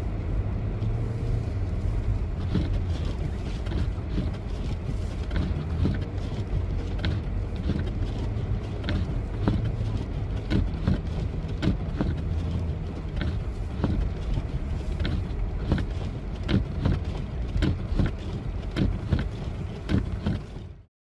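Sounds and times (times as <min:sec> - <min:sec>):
car cabin rumble: 0:00.0 - 0:20.9.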